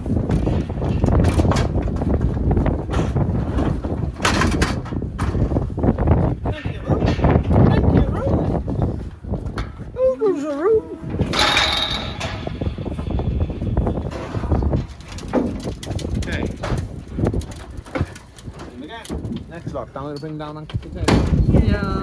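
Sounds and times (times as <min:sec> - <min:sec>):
hooves clattering on metal ramp: 0:00.0 - 0:06.3, 0:11.1 - 0:19.5
people calling to cattle: 0:10.0 - 0:11.1.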